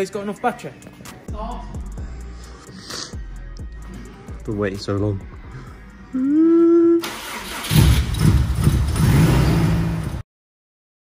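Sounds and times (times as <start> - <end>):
car engine cranking and starting: 7.0 - 10.2.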